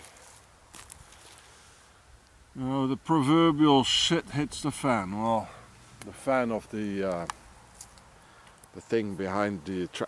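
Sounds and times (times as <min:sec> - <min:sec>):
faint rustle: 0:00.0 - 0:02.4, 0:05.3 - 0:09.2
outdoor background hiss: 0:00.0 - 0:10.0.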